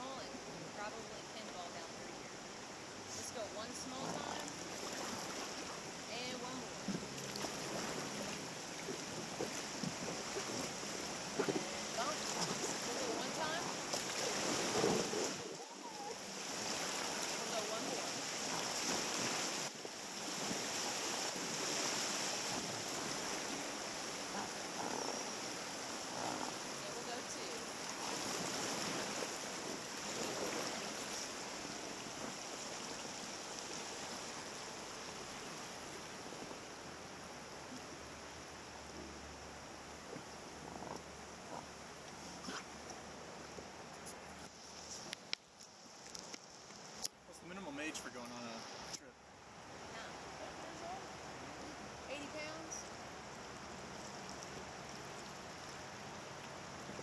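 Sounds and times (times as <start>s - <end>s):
rushing river white water: 0.0s - 45.0s.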